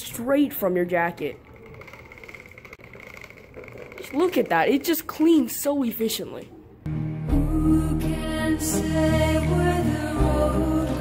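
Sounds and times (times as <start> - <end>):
toy lawnmower rattling on tiles: 1.0 - 5.5.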